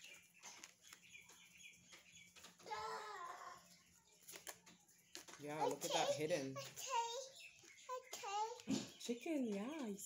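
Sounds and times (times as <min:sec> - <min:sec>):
cards being handled: 0:04.2 - 0:05.8.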